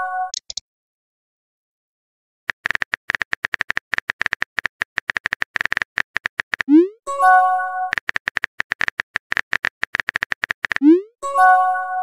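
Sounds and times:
keyboard typing clicks: 0.3 - 0.6, 2.5 - 6.9, 7.9 - 11.0.

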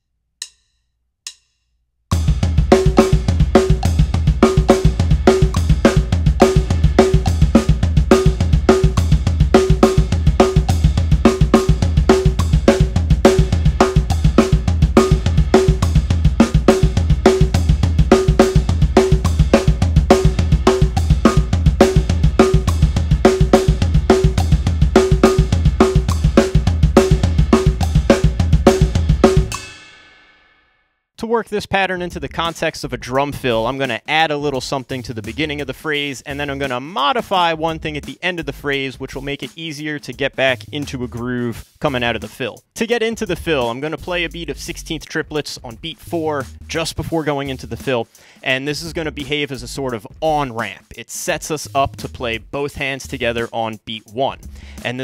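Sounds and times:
drum kit playing fast pattern: 2.1 - 30.2, 31.5 - 55.0.

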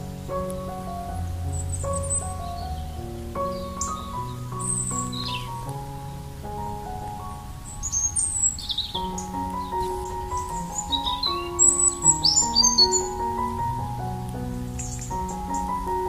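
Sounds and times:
soft slow piano music: 0.0 - 16.0
birds chirping and whistling: 1.5 - 5.7, 7.6 - 13.6.

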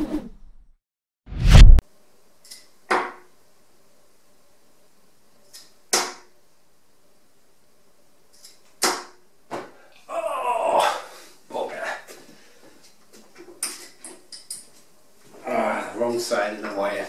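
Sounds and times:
darts thudding into dartboard: 2.9 - 3.2.

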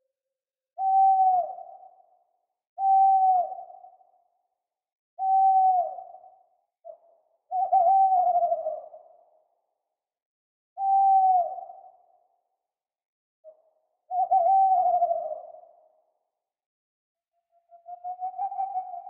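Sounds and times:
owl hooting: 0.8 - 2.0, 2.8 - 4.1, 5.2 - 9.2, 10.8 - 12.1, 13.5 - 15.8, 17.7 - 19.0.

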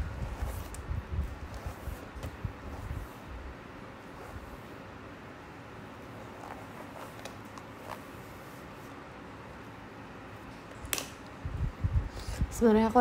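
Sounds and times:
steady low hiss: 0.0 - 13.0.

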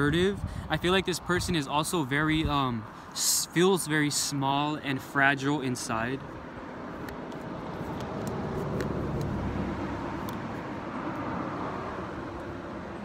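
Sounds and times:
car passing: 5.8 - 13.0.

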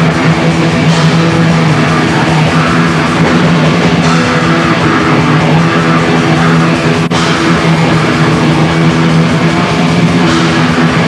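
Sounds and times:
black metal band playing live: 0.0 - 11.0
distorted electric guitar: 0.0 - 11.0.

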